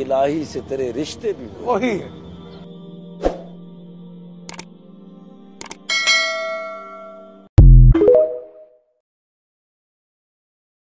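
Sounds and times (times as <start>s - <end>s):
sharp clicks: 4.5s - 4.7s, 5.6s - 5.9s
bright bell-like chime: 5.9s - 7.4s.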